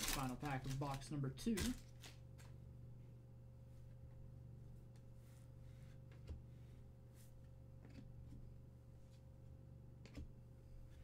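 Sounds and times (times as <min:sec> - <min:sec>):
trading cards being shuffled: 0:00.0 - 0:02.6
low electrical hum: 0:00.0 - 0:11.0.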